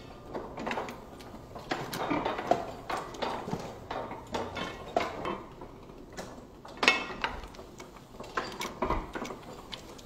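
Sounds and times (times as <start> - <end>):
printing press clacking: 0.0 - 10.0.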